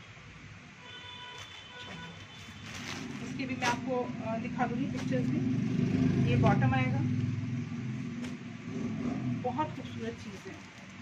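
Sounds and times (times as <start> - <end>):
plastic wrapping crackle: 1.2 - 4.0, 4.6 - 5.4, 9.8 - 11.0
fabric being handled: 1.3 - 5.4, 9.8 - 11.0.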